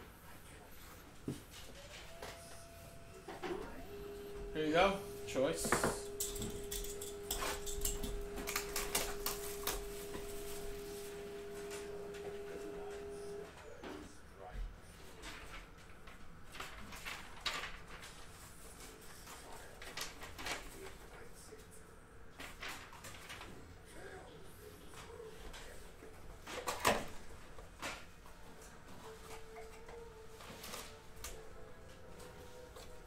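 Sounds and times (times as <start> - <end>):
steady hum: 0.0 - 13.8.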